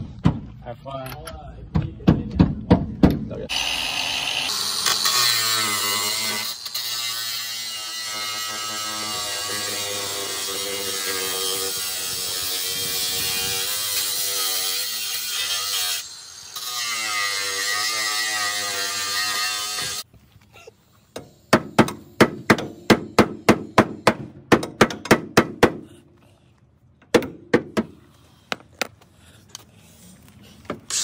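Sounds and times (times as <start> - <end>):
angle grinder cutting metal: 3.5 - 20.1
hammer striking metal: 21.2 - 25.8.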